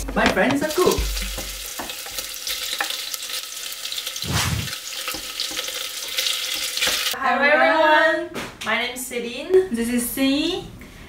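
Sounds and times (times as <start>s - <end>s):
food sizzling in oil: 0.6s - 7.2s.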